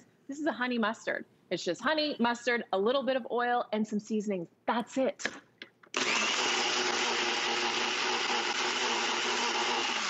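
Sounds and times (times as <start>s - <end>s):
blender motor whining: 5.9s - 10.0s.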